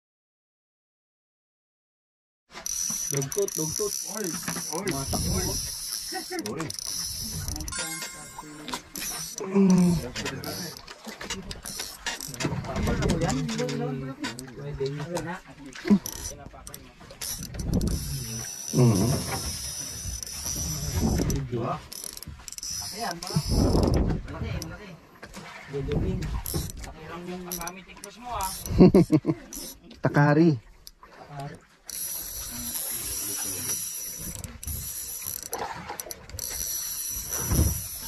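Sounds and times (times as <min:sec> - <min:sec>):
fishing reel gears whirring: 0:02.5 - 0:24.8, 0:25.8 - 0:30.0, 0:31.8 - 0:38.0.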